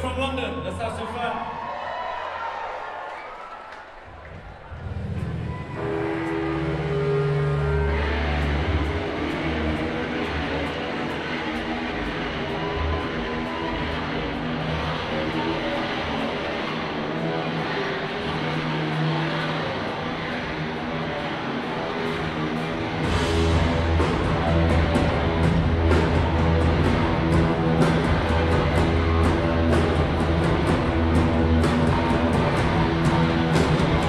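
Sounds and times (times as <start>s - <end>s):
rock band playing live: 4.8s - 34.0s.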